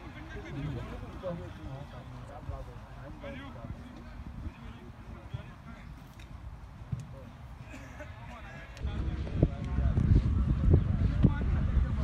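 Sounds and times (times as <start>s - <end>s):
distant indistinct voices: 0.0s - 12.0s.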